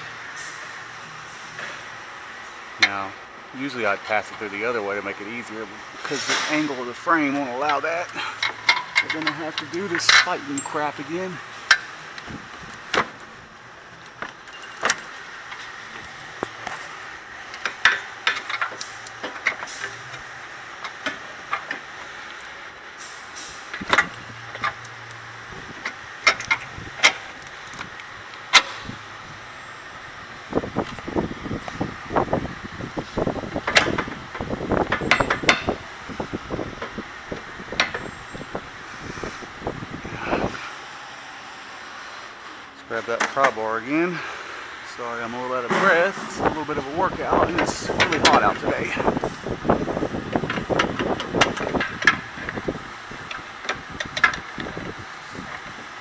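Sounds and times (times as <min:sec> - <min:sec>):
man's voice: 0:02.8 - 0:08.3, 0:09.0 - 0:11.4, 0:44.9 - 0:49.2.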